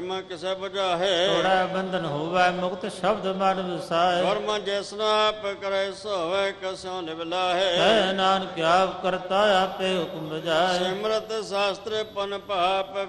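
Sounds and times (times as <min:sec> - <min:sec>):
man chanting melodic recitation: 0:00.0 - 0:13.0.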